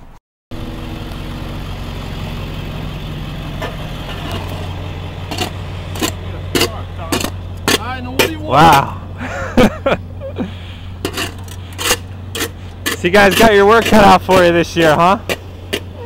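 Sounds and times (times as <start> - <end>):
truck engine idling: 0.5 - 16.0.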